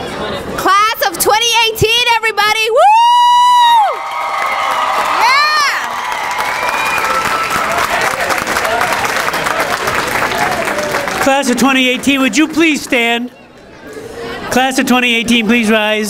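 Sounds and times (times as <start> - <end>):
whoop: 2.8 - 8.0
audience cheering: 2.8 - 13.0
audience clapping: 3.8 - 13.2.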